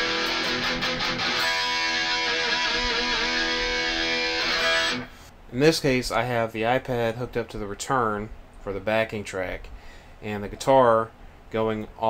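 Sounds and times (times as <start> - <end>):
distorted electric guitar chord: 0.0 - 5.2.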